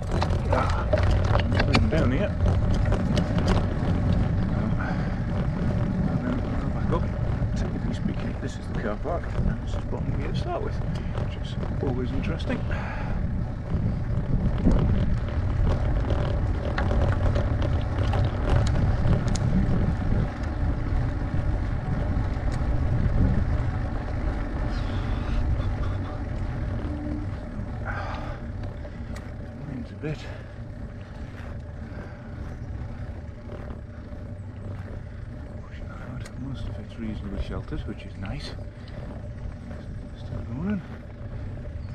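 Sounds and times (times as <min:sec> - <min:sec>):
wind and road noise rumble: 0:00.0 - 0:41.9.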